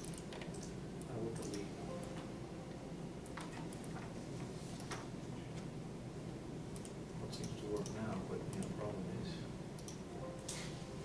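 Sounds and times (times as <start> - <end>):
steady room hum: 0.0 - 11.0.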